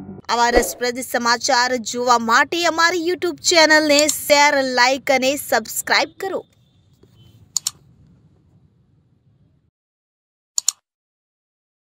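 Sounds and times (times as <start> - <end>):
mouse double click: 10.6 - 10.8.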